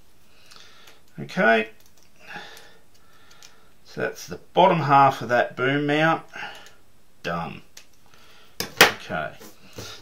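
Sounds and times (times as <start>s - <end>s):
faint breath: 0.2s - 1.0s, 2.2s - 3.8s, 8.1s - 8.6s.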